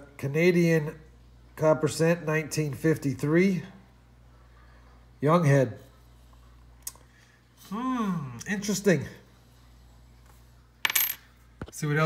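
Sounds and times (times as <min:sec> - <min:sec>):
coins clinking on wooden table: 0:10.8 - 0:11.4.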